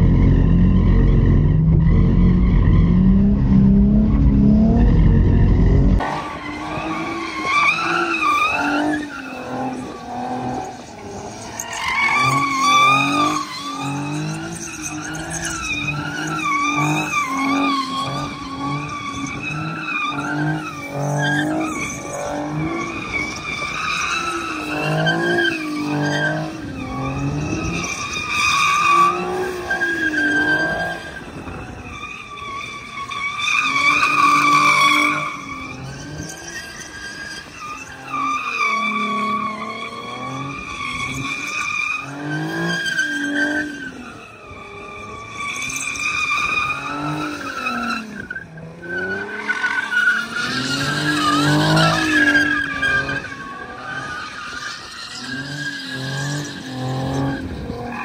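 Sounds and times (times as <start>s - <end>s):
car engine revving: 0.0s - 11.3s
tyres skidding and squealing: 0.0s - 58.0s.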